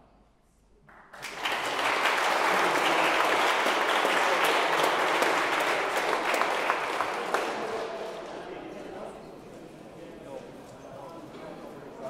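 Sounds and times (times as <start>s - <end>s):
audience applauding: 0.9s - 8.7s.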